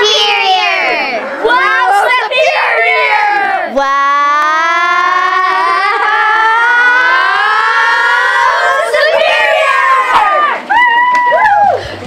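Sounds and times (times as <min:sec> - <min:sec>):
children shouting: 0:00.0 - 0:11.8.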